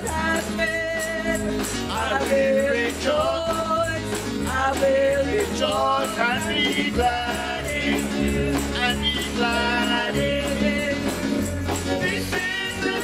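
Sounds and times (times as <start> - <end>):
band with drums: 0.0 - 13.0
tambourine: 0.0 - 13.0
woman singing: 0.0 - 13.0.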